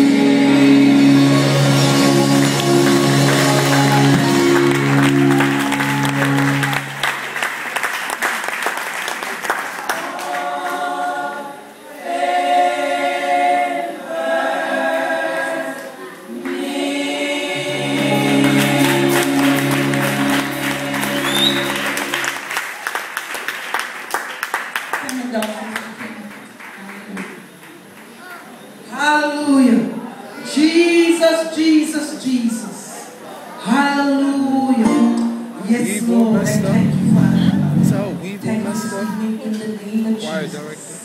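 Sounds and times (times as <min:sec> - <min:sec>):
gospel choir singing: 0:00.0 - 0:07.1, 0:09.8 - 0:22.6
instrumental backing with bass: 0:00.0 - 0:07.3, 0:17.0 - 0:22.4, 0:34.8 - 0:38.8
hand-clapping: 0:02.4 - 0:10.4, 0:18.4 - 0:28.1.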